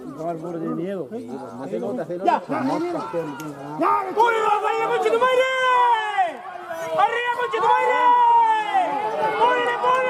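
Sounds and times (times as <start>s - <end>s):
people shouting and yelling: 1.8s - 10.0s.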